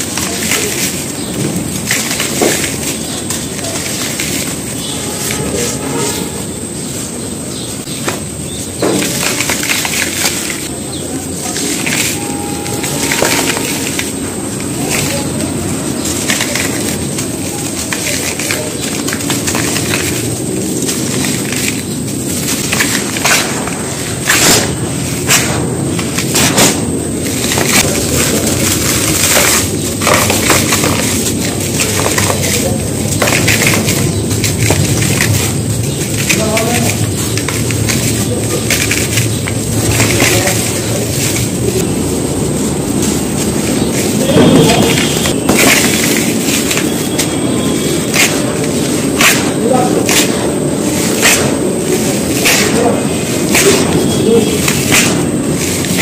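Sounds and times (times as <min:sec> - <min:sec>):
sharp cracks of chunks snapping: 0:00.0 - 0:05.7, 0:07.8 - 0:56.0
dirt crunching and sifting: 0:00.0 - 0:56.0.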